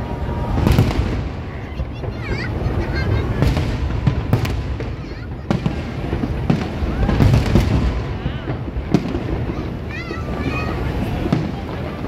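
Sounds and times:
fireworks bangs: 0.0s - 12.0s.

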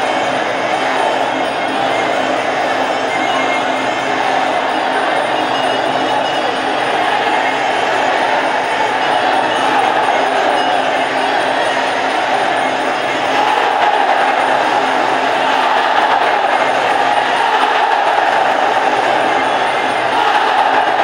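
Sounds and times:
crowd noise: 0.0s - 21.0s.

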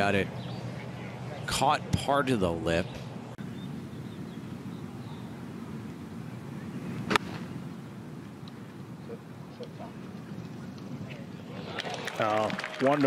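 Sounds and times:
outdoor background hum: 0.0s - 13.0s
golf club striking ball: 7.0s - 7.5s.

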